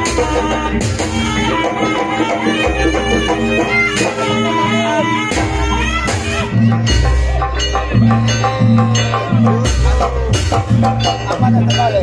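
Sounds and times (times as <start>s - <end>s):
gamelan percussion: 0.0s - 12.0s
reedy shawm melody: 0.0s - 12.0s.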